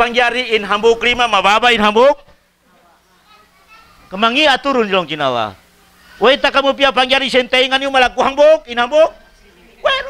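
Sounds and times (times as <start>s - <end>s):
man lecturing: 0.0s - 2.4s, 6.2s - 9.2s
faint distant voices: 0.0s - 10.0s.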